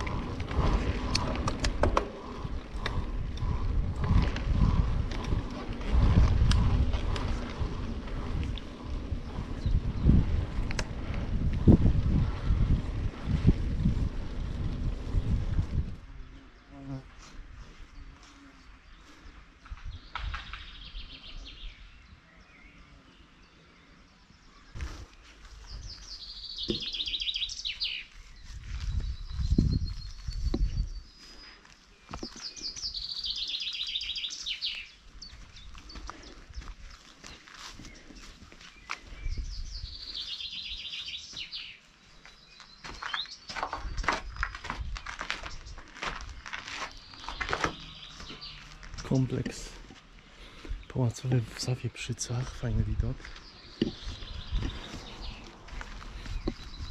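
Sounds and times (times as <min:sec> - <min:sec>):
low rumble on microphone: 0:00.0 - 0:18.2, 0:28.2 - 0:31.4, 0:43.7 - 0:56.9
songbird singing: 0:00.0 - 0:56.9
footsteps through grass: 0:27.9 - 0:50.2, 0:53.0 - 0:56.9.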